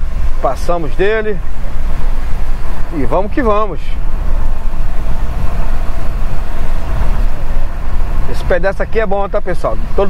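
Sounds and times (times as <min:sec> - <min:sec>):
car driving on wet road: 0:00.0 - 0:10.0.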